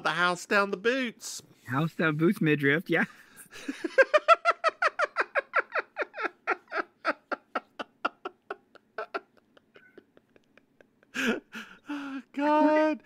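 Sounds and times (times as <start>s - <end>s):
person laughing hard: 3.6s - 12.0s.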